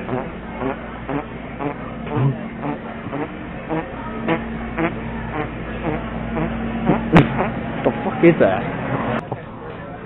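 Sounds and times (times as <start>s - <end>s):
steady low hum: 0.0s - 9.6s.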